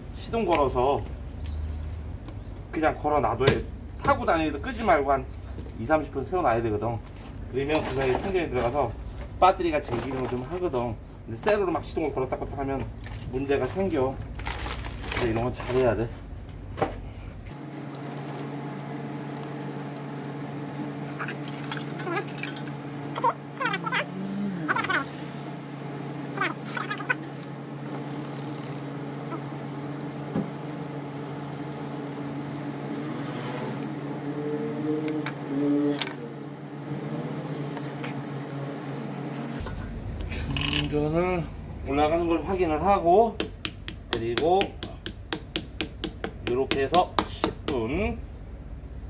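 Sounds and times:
steady electrical hum: 0.0 - 49.0.

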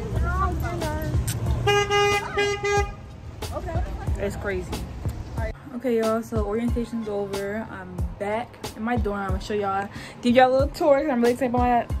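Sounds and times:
car horn beeps: 1.6 - 3.1.

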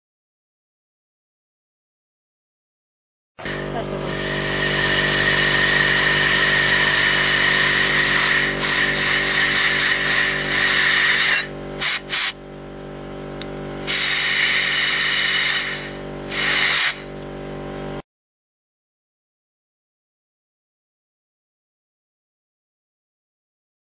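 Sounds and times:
compressed air hissing: 3.4 - 12.4, 13.8 - 17.1
steady hum: 3.4 - 18.0.

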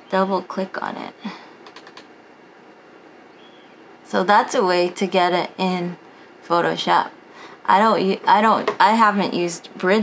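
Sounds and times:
computer mouse clicks: 1.6 - 2.1.

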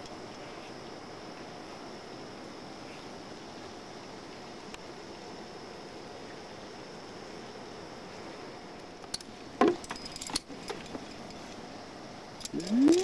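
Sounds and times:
steady hiss: 0.0 - 13.0
metallic clinks of climbing gear: 9.0 - 11.6, 12.4 - 13.0.

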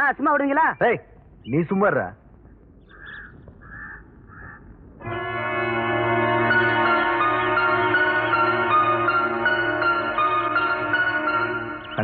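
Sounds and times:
crow cawing: 2.9 - 4.7.

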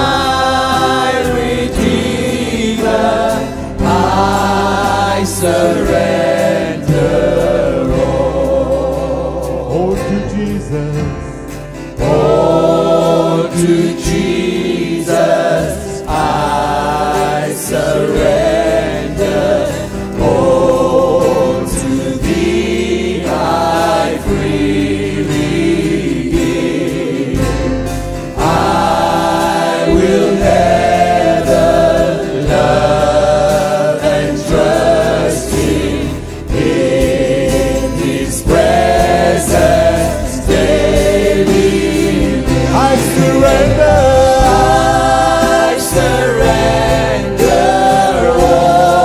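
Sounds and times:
full band playing: 0.0 - 49.0
singers and congregation singing: 0.0 - 49.0.

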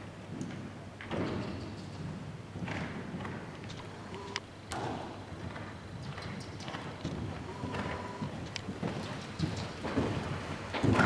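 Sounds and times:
horse hoofbeats on sand: 0.3 - 3.9, 4.8 - 11.0.

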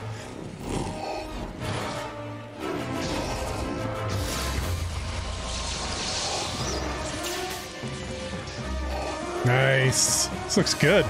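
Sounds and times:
dramatic film music: 0.0 - 11.0
lightsaber humming: 1.1 - 9.4.

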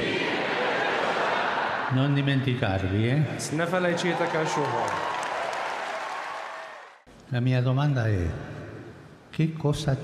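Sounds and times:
large audience applauding: 3.7 - 7.0.

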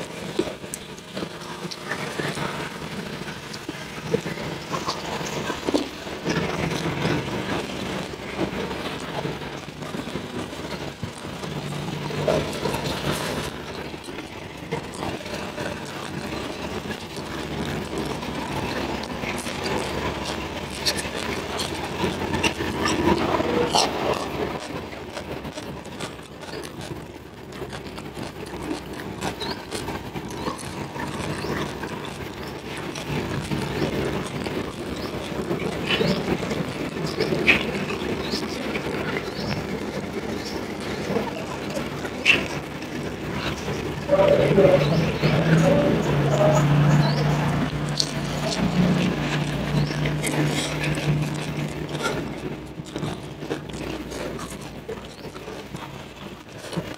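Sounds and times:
chewing: 0.0 - 56.9.

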